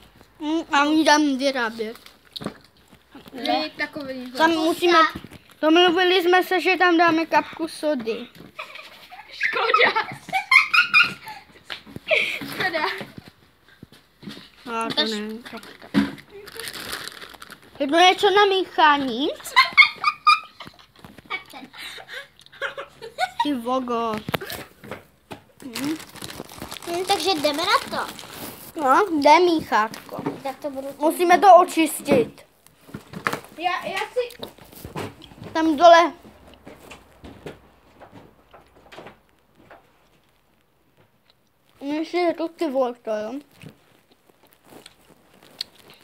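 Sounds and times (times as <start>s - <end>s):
crinkly rustle of handling: 0.1s - 9.2s, 11.9s - 21.7s, 23.4s - 46.0s.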